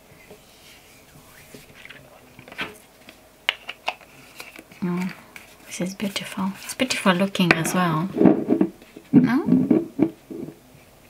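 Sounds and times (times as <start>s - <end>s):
hands rubbing lotion squishing: 1.2s - 7.7s.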